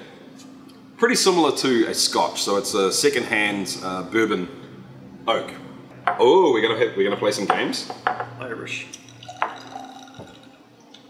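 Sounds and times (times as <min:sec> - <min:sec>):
liquid trickling into a glass: 0:08.9 - 0:11.0.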